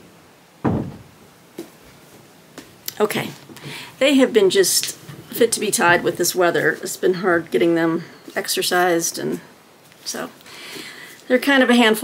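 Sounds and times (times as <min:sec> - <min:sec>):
soft knock: 0:00.6 - 0:01.1.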